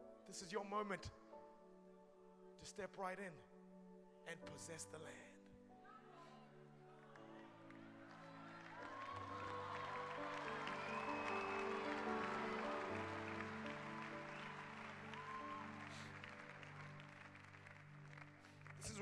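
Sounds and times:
keyboard pad chords: 6.6s - 19.0s
congregation clapping and calling out: 7.1s - 19.0s.

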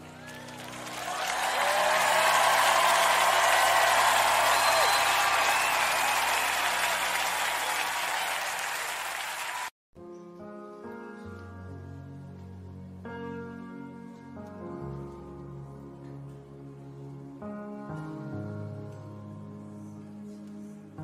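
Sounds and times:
crowd applauding and cheering: 0.0s - 9.7s.

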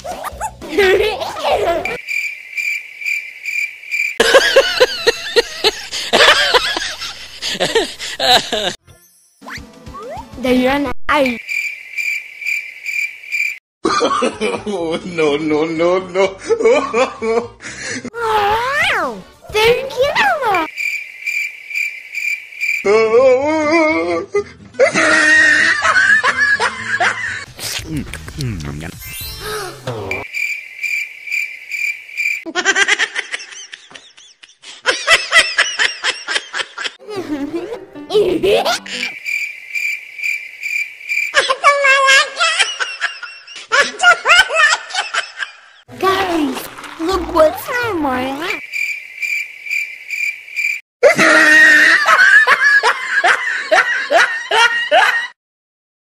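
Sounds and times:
high-pitched laughter: 0.0s - 2.0s, 22.9s - 27.5s, 32.5s - 39.2s, 41.4s - 45.7s, 51.0s - 55.4s
cricket chirping: 1.7s - 5.5s, 11.1s - 13.6s, 20.0s - 22.9s, 29.9s - 32.5s, 38.8s - 42.3s, 46.6s - 50.8s.

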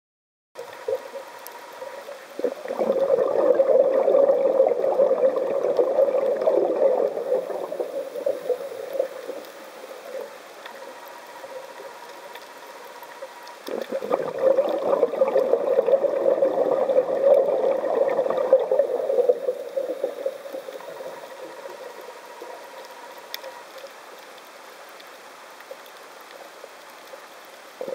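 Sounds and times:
muffled underwater hiss: 0.6s - 27.9s.

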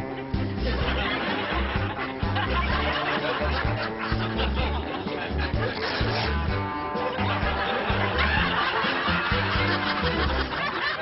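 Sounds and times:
laugh track chuckling: 0.0s - 11.0s
upbeat comedy music with bass: 0.0s - 11.0s.

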